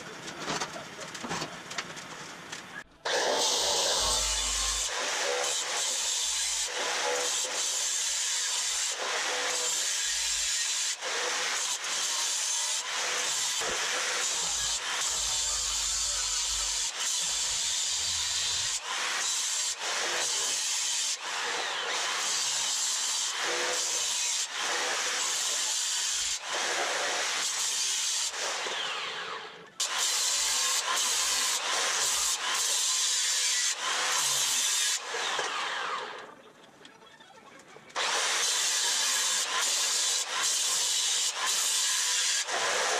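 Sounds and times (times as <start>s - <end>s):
angle grinder cutting steel: 3.0s - 36.4s, 38.0s - 42.9s.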